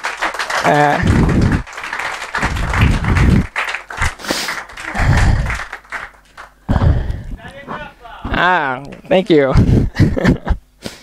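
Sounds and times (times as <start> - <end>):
audience applause: 0.0 - 9.5
heavy low thuds: 1.0 - 1.6, 2.4 - 4.2, 4.9 - 5.6, 6.7 - 8.5, 9.5 - 10.5.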